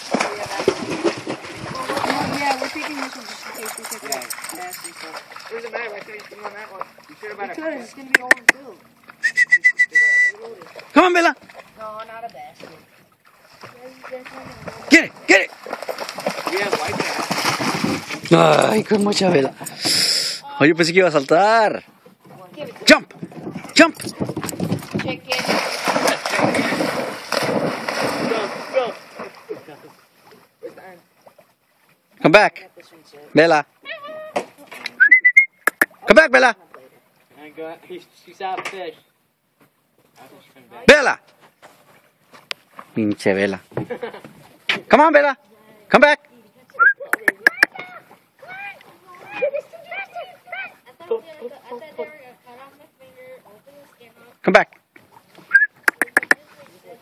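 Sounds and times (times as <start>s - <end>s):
dog splashing in water: 0.0s - 8.7s, 10.3s - 19.5s, 22.5s - 30.4s.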